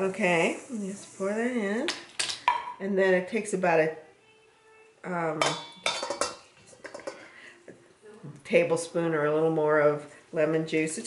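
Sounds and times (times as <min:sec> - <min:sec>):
utensils clinking on metal bowl: 0:05.4 - 0:07.3.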